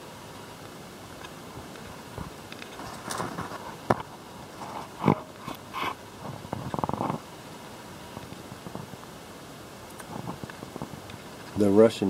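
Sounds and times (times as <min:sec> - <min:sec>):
tortoise chewing corn: 0:00.2 - 0:11.6.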